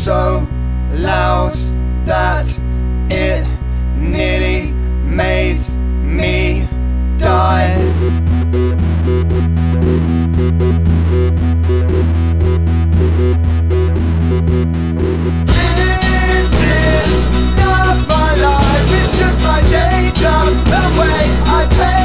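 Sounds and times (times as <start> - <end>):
pop song with singing and band: 0.0 - 8.1, 15.5 - 22.0.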